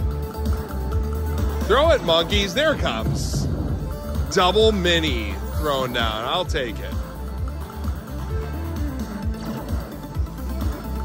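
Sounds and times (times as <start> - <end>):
slot machine bonus music: 0.2 - 11.0.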